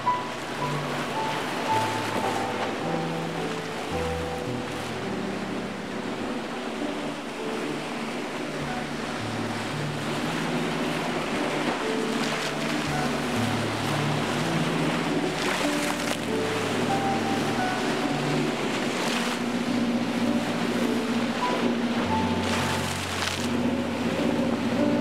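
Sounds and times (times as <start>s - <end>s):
sea waves breaking: 0.0s - 25.0s
slow instrumental music: 0.0s - 25.0s.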